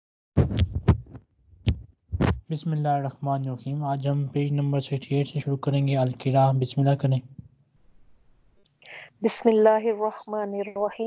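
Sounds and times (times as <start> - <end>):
sudden thumps: 0.4 - 2.5.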